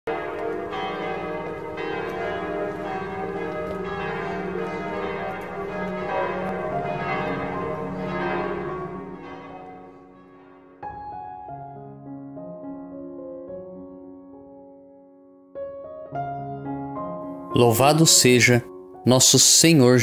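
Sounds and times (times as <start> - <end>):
church bells ringing: 0.1 - 11.4, 17.5 - 20.0.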